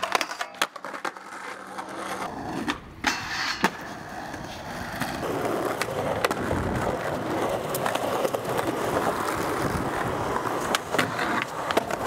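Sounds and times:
skateboard clacks: 0:00.0 - 0:12.0
skateboard wheels rolling on concrete: 0:00.0 - 0:12.0.

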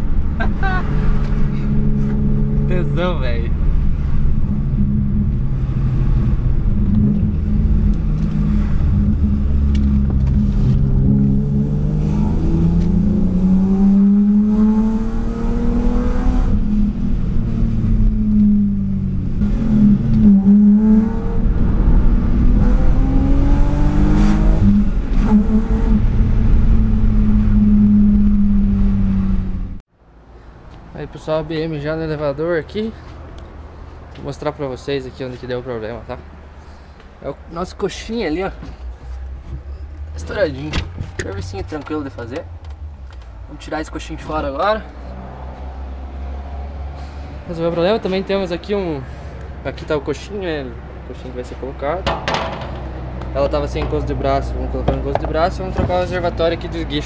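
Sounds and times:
car engine accelerating: 0:00.0 - 0:29.8.

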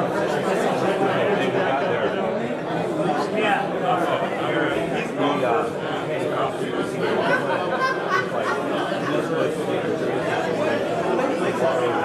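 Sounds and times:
many people chatting: 0:00.0 - 0:12.0.

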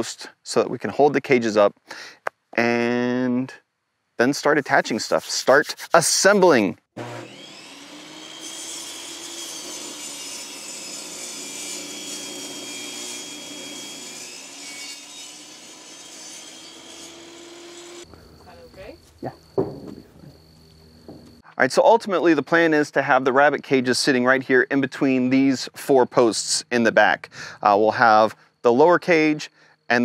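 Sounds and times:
table saw cutting wood: 0:07.0 - 0:18.1.

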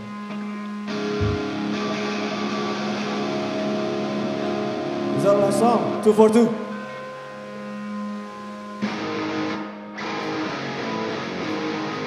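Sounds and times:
electric guitar chord ringing: 0:00.0 - 0:12.0
brief low thump: 0:01.2 - 0:01.4
low hum: 0:01.2 - 0:01.5.

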